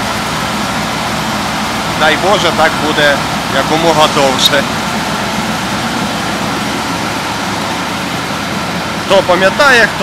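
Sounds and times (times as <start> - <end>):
combine harvester engine idling: 0.0 - 10.0.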